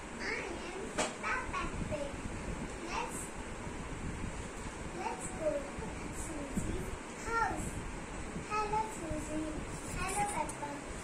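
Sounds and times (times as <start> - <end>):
wind noise on microphone: 1.3 - 11.0.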